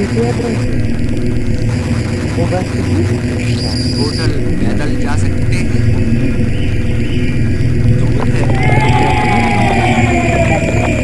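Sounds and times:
long falling tone: 0.0s - 11.0s
low drone with noise: 0.0s - 11.0s.

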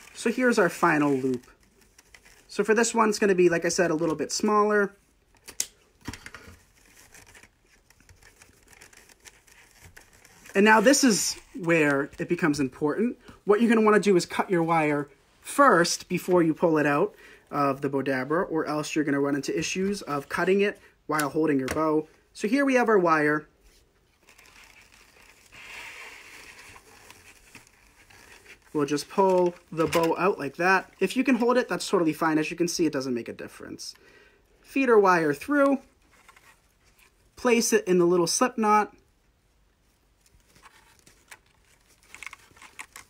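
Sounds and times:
fabric ribbon rustling: 0.0s - 3.2s, 6.6s - 12.5s, 23.7s - 31.6s.

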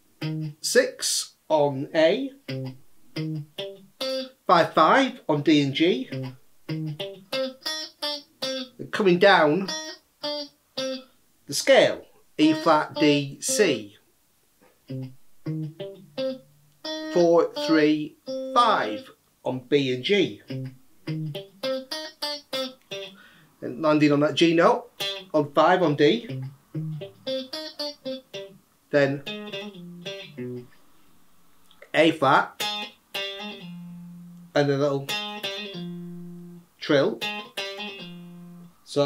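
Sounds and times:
electric guitar picked notes: 0.2s - 0.6s, 2.4s - 4.4s, 5.6s - 8.8s, 9.4s - 11.1s, 14.9s - 19.1s, 20.4s - 23.4s, 25.0s - 31.0s, 32.5s - 38.8s
person speaking: 0.6s - 2.5s, 4.4s - 6.4s, 8.8s - 9.7s, 11.5s - 14.0s, 17.0s - 20.6s, 23.6s - 26.4s, 28.9s - 30.8s, 31.7s - 32.6s, 34.1s - 35.1s.

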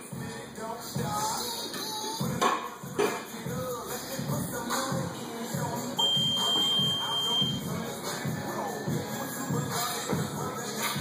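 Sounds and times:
background music with steady beat: 0.0s - 11.0s
high steady beep: 6.0s - 7.6s.

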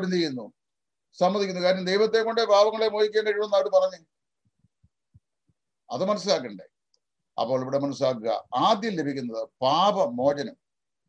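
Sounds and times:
man speaking: 0.0s - 0.6s, 1.2s - 4.0s, 5.9s - 6.8s, 7.4s - 10.6s.

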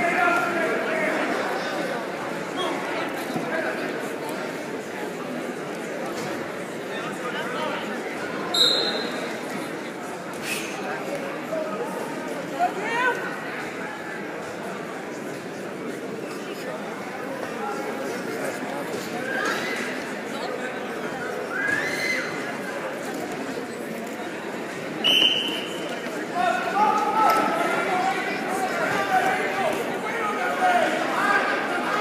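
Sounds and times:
crowd voices chattering: 0.0s - 32.0s
referee's whistle blown: 8.5s - 9.2s, 25.0s - 25.8s.

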